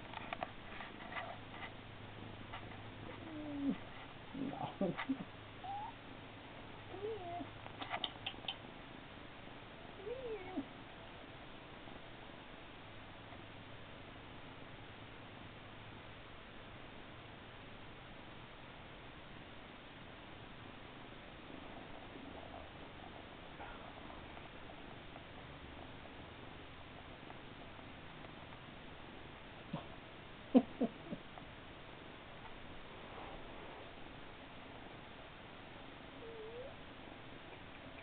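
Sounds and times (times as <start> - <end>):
kitten purring: 2.2 - 6.0, 6.9 - 8.6, 10.0 - 10.7, 36.1 - 36.8
sharp clicks: 7.8 - 8.7.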